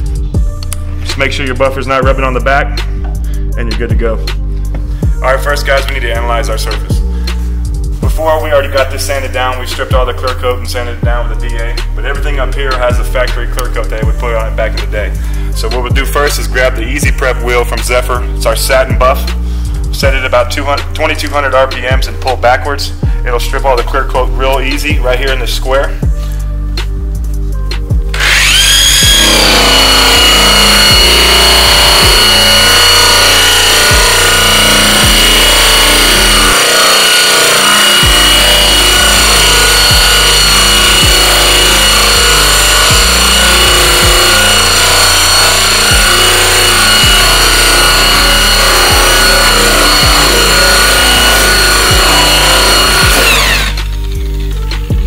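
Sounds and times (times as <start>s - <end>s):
electric polisher whining: 28.1s - 54.4s.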